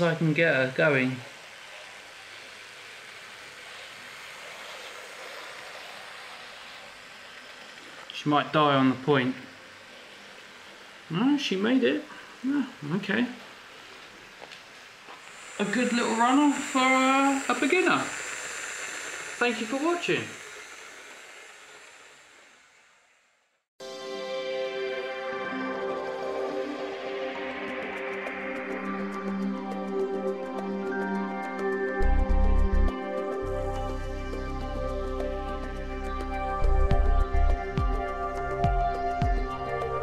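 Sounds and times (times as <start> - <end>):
faint steady hiss: 0.0 - 23.7
model train motor and wheels running: 0.0 - 23.7.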